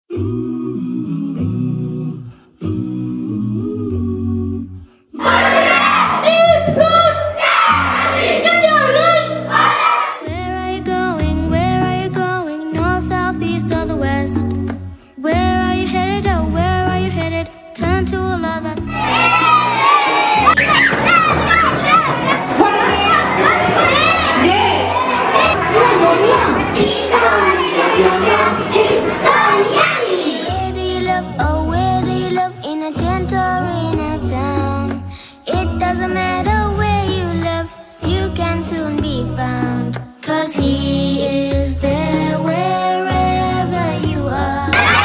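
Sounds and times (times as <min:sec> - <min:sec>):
wordless humming vocals: 0:00.1 - 0:45.0
children shouting excitedly: 0:05.2 - 0:10.2, 0:18.9 - 0:30.7, 0:44.8 - 0:45.0
background music with low bass: 0:30.6 - 0:45.0.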